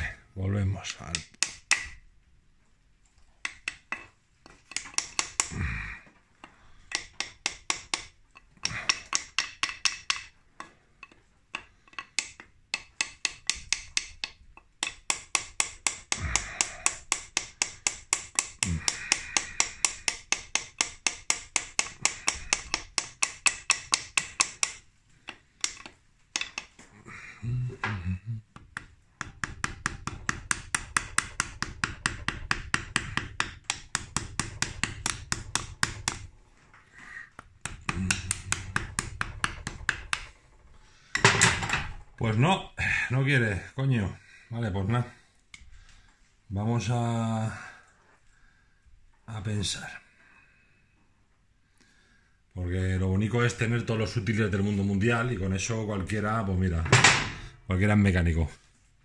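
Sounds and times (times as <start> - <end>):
rapid light hammer taps: 6.4 - 26.8, 28.6 - 36.4, 37.4 - 41.3.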